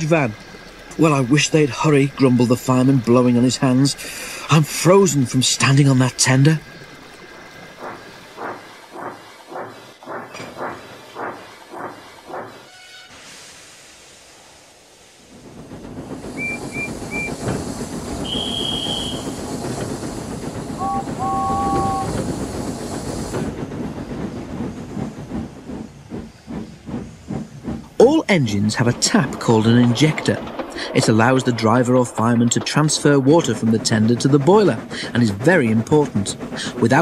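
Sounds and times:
steam hissing: 0.0 - 37.0
steam locomotive puffing: 0.4 - 37.0
high whistle peeps: 16.4 - 17.4, 18.2 - 19.4
lower two-note steam whistle: 18.2 - 19.4, 20.8 - 22.2.

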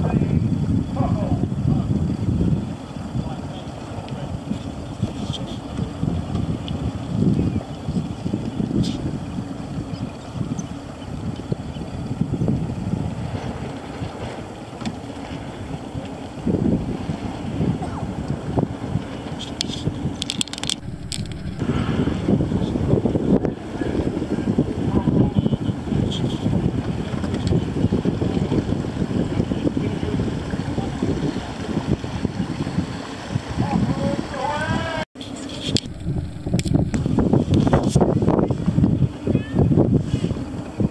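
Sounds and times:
wind buffeting microphone: 0.0 - 14.7, 15.4 - 35.0, 35.6 - 40.9.

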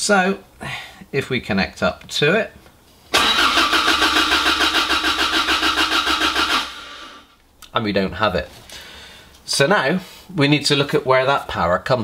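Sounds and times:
engine cranking on starter motor: 3.1 - 7.3.

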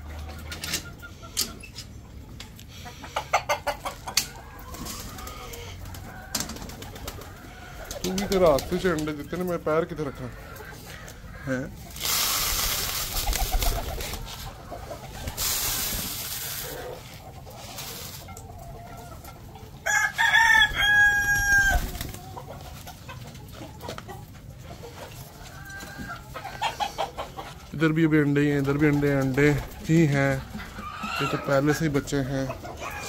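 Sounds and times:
grain pouring into plastic feeder: 12.0 - 13.2
rooster crowing: 19.8 - 22.0.

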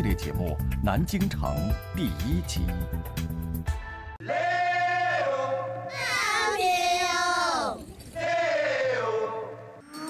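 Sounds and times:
wordless high singing voice: 4.2 - 10.0.

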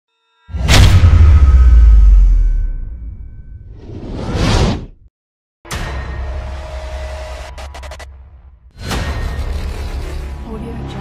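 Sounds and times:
sudden hit: 0.5 - 4.0
rapid stuttering glitch: 9.1 - 11.0.

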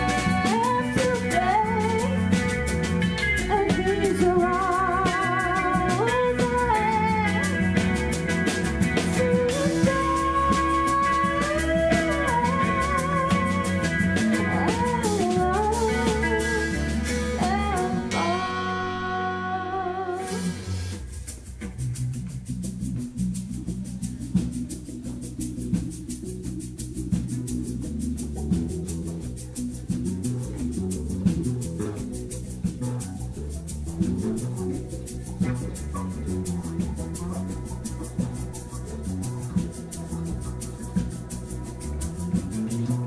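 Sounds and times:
woman singing: 0.0 - 2.6, 3.4 - 8.0, 9.0 - 20.8
drum kit ticking beat: 0.0 - 18.7, 20.2 - 43.0
electric guitars: 0.0 - 43.0.

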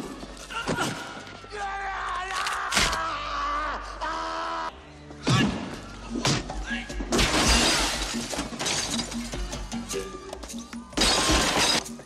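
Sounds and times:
glass shattering: 7.1 - 9.4, 11.0 - 12.0.

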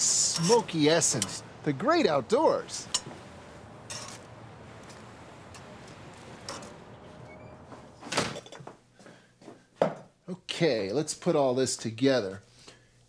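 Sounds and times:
bread sizzling on a grill: 0.0 - 7.2.

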